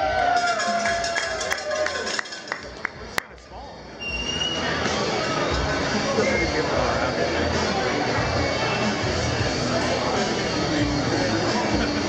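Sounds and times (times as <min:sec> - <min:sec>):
crowd voices in a hall: 0:00.0 - 0:12.0
music: 0:00.0 - 0:12.0.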